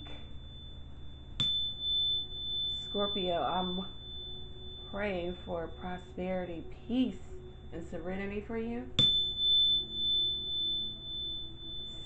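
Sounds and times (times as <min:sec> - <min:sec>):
tuning fork tap: 0:00.0 - 0:06.1, 0:09.0 - 0:12.0
tuning fork ringing: 0:00.0 - 0:12.0.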